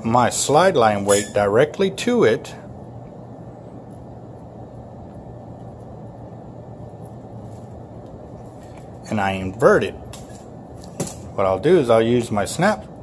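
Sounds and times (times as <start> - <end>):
low hum and rumble: 0.0 - 13.0.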